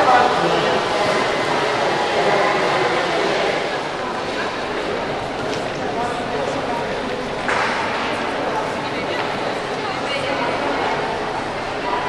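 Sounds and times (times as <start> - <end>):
busy station hall din: 0.0 - 12.0.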